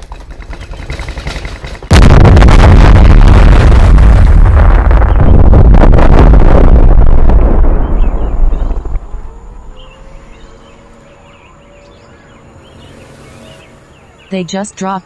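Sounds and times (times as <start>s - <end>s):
explosion rumbling roar: 1.9s - 9.6s.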